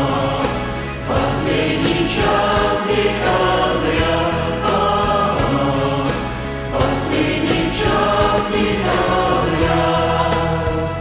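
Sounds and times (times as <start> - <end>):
mixed choir singing: 0.0 - 11.0
musical accompaniment: 0.0 - 11.0.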